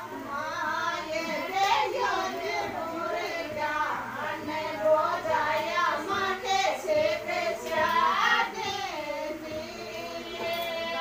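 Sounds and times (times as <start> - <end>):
high voice singing folk song: 0.0 - 11.0.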